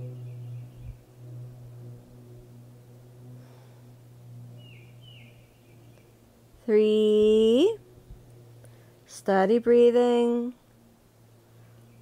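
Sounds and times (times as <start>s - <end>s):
bird chirping: 0.0s - 1.2s, 4.5s - 6.2s
low hum: 0.0s - 12.0s.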